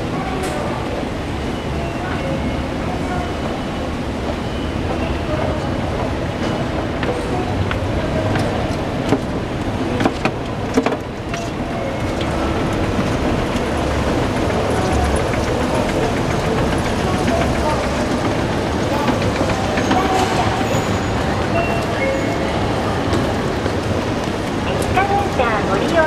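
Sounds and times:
footsteps in concourse: 0.2 - 26.0.

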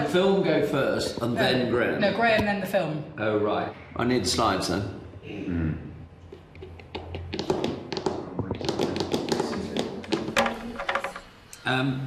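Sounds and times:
laptop keyboard typing: 6.6 - 11.2.

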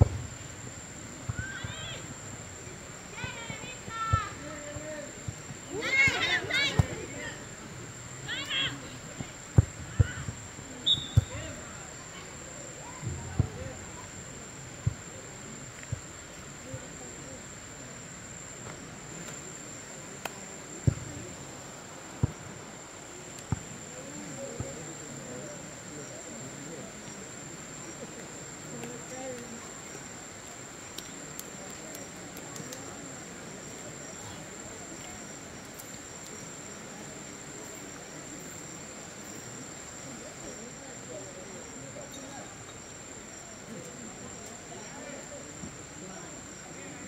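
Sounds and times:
faint distant voices: 0.0 - 47.0
insect chirring: 8.0 - 12.9, 25.0 - 47.0.

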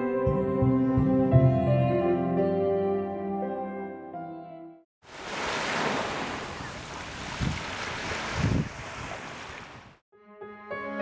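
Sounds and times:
waves washing onto beach: 5.0 - 10.0
wind buffeting microphone: 6.4 - 10.0.

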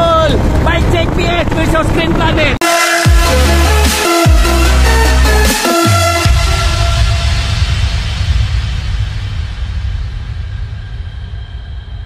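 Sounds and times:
deep low rumble: 6.2 - 12.0.

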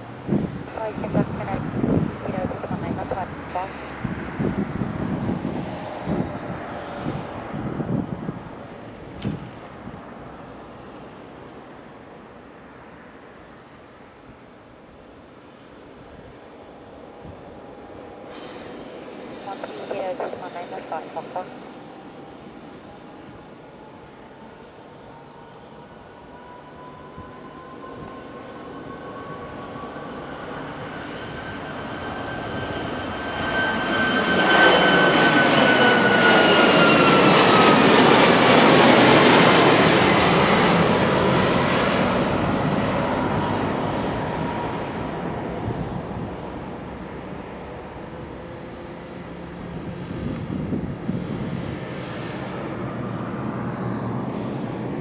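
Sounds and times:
jet taking off: 0.0 - 14.0, 15.6 - 55.0.

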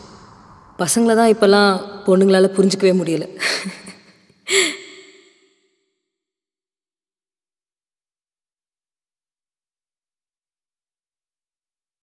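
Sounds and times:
breathy sigh: 4.4 - 5.4.

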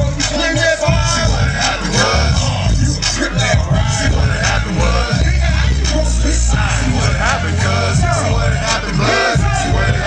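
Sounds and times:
hip hop beat with heavy bass: 0.0 - 10.0.

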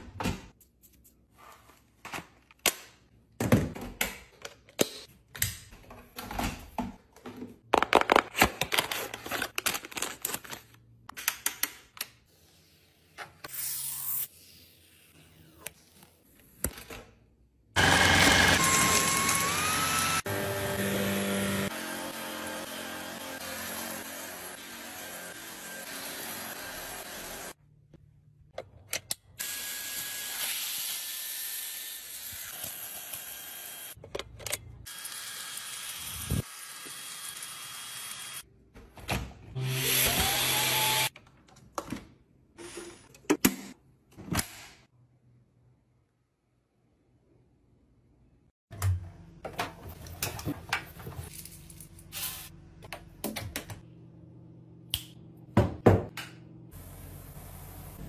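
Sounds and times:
vacuum cleaner motor running: 17.8 - 27.5.

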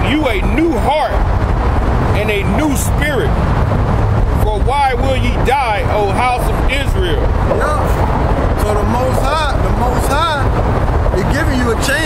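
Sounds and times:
street traffic: 0.0 - 12.0
wind on microphone: 0.0 - 12.0.

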